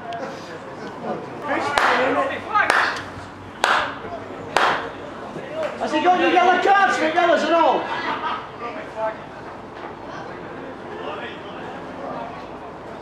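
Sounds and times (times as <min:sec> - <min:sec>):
men talking: 0:00.0 - 0:09.5
slow handclaps: 0:01.8 - 0:02.0, 0:02.7 - 0:04.0.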